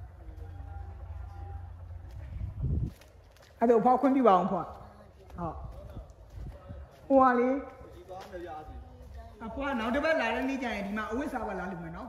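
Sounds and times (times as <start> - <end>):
low rumble: 0.0 - 3.4.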